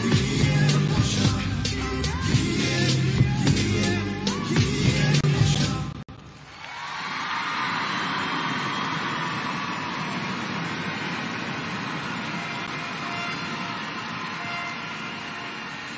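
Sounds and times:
crowd applauding: 6.4s - 15.9s.

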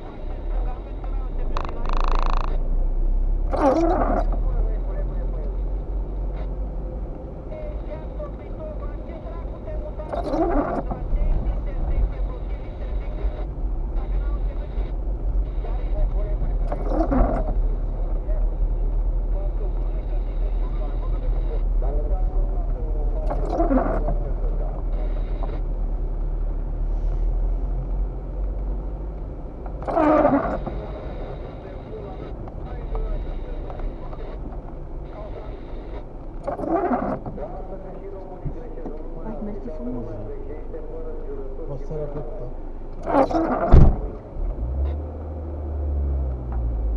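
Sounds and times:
car engine and road rumble: 0.0s - 46.9s.

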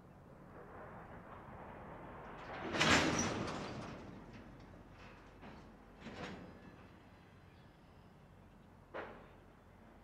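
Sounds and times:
train rolling past: 0.1s - 7.6s.

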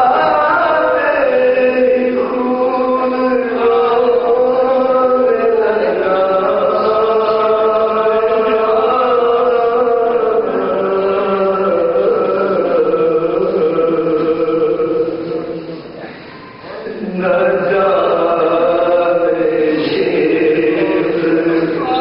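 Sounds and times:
man chanting: 0.0s - 15.7s, 16.8s - 22.0s.

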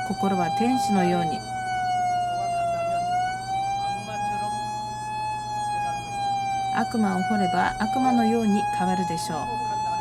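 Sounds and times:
continuous high tone: 0.0s - 10.0s.

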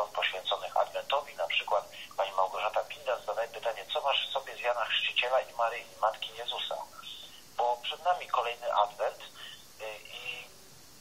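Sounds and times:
speech over a telephone line: 0.0s - 10.5s.

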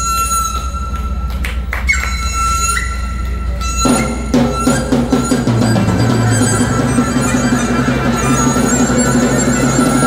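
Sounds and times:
bamboo flute long high note: 0.0s - 10.0s
drum strike: 3.9s - 10.0s.

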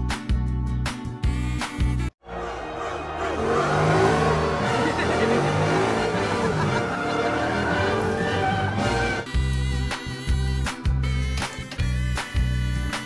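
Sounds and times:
music: 0.0s - 13.0s
race car engine revving: 2.4s - 9.2s.

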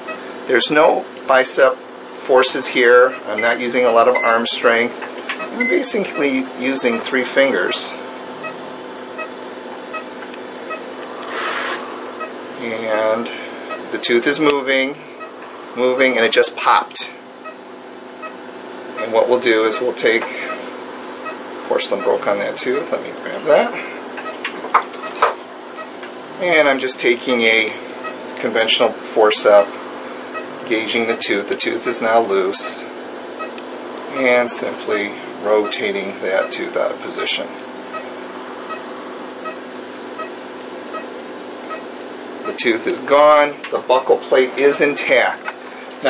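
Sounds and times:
machine hum: 0.0s - 46.0s
short electronic beeps: 3.1s - 3.6s, 4.2s - 4.4s, 5.4s - 5.9s, 8.4s - 8.6s, 37.9s - 38.1s, 38.7s - 39.6s, 40.2s - 41.1s, 41.7s - 42.6s.

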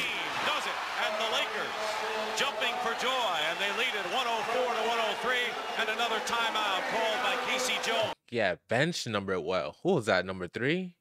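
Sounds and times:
crowd noise: 0.0s - 8.2s
televised basketball game audio: 0.0s - 11.0s.

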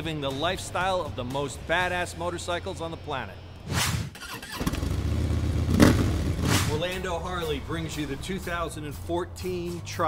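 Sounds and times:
man's voice: 0.0s - 3.4s, 6.7s - 10.0s
motorcycle engine revving: 4.1s - 6.9s.

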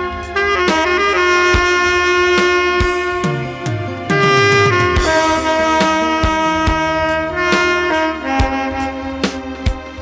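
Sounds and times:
accompaniment with steady beat: 0.0s - 10.0s
tenor saxophone melody: 0.0s - 10.0s.

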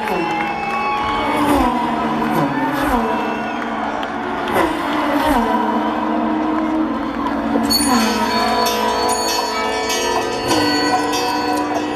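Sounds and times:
electric guitar notes ringing: 7.0s - 11.9s.

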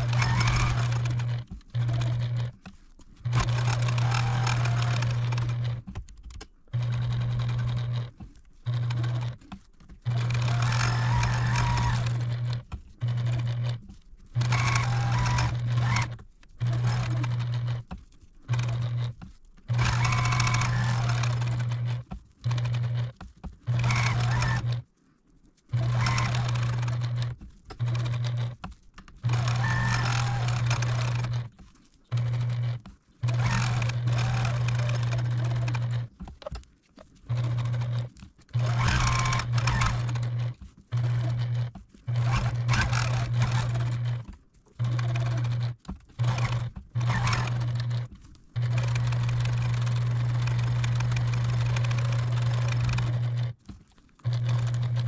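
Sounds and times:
sewing machine stitching: 0.0s - 24.8s, 25.7s - 55.0s.

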